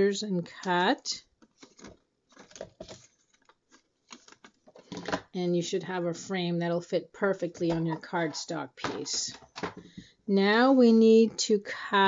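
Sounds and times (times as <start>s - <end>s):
paper rustling: 1.4s - 5.1s.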